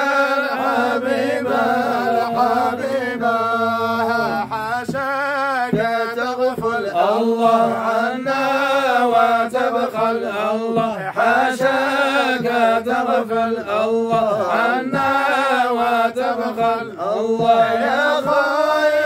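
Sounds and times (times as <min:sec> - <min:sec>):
men chanting together: 0:00.0 - 0:19.0.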